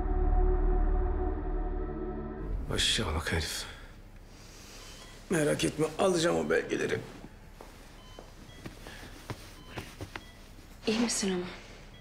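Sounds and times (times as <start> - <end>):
light footsteps on hard floor: 7.2 - 10.5.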